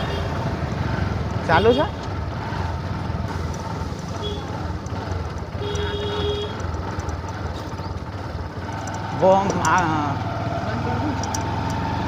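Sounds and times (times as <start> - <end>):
road rumble: 0.0 - 12.0
scooter engine running: 0.0 - 12.0
wind: 0.0 - 12.0.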